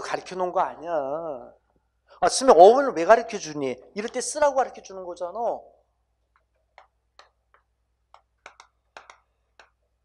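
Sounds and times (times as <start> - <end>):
chalk tapping on blackboard: 6.3 - 9.9.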